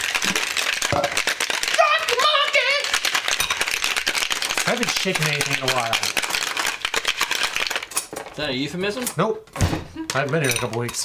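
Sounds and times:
ice rattling in cocktail shaker: 0.0 - 8.1.

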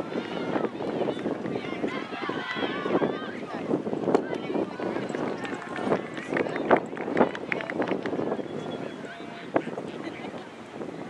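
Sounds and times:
people calling out: 0.0 - 6.8.

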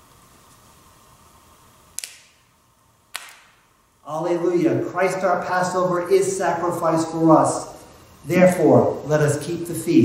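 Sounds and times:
wafer snapping: 2.0 - 2.4, 3.1 - 3.6.

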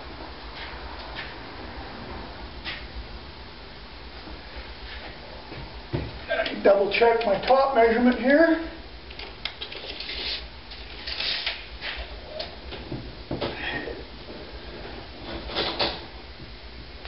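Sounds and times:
low steady hum: 0.0 - 17.0.

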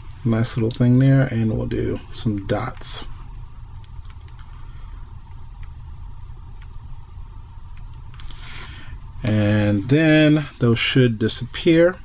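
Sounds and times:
low hum: 0.0 - 12.0
faint tapping clicks: 3.8 - 5.8, 6.5 - 6.9.

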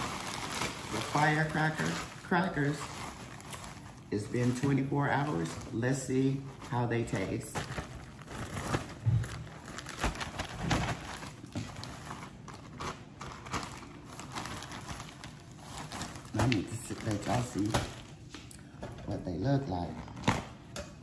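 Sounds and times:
plastic bag crinkling: 0.0 - 20.8.

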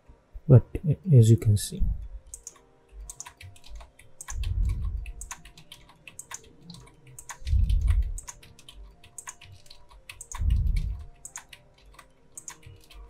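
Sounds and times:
keyboard and mouse clicking: 2.2 - 13.0
low muffled rumble: 4.4 - 5.1, 7.4 - 8.2, 10.4 - 11.0.

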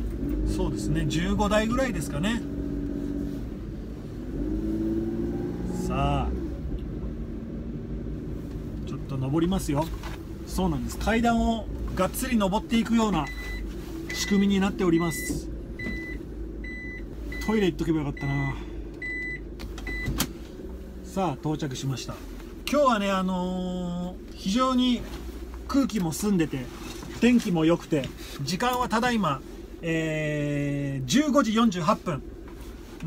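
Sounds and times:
car engine: 0.0 - 33.0
road rumble: 0.0 - 33.0
car warning beeps: 13.0 - 20.2.

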